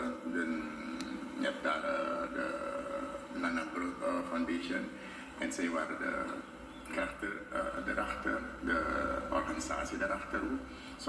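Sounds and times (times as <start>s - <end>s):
man saying uhh: 0.3s - 3.3s.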